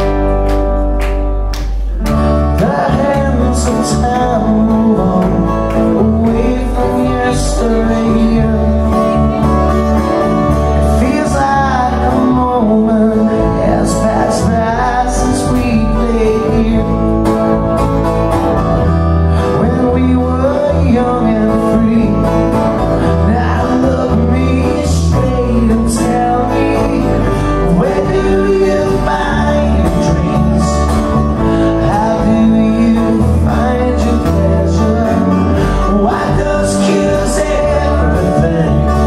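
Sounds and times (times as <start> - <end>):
acoustic guitars: 0.0 - 39.0
person singing: 1.6 - 17.6, 19.3 - 39.0.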